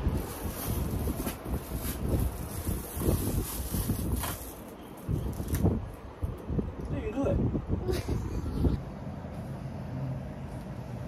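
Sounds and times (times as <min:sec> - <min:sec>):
distant traffic hum: 0:00.0 - 0:11.0.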